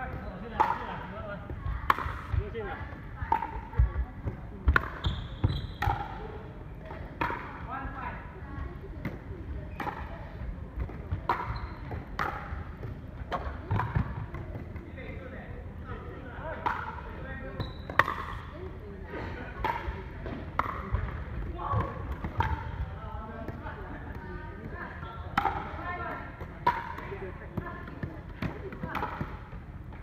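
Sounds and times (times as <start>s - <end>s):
paddles hitting plastic ball: 10.8s - 14.9s, 17.9s - 18.4s, 19.6s - 23.6s, 24.6s - 30.0s.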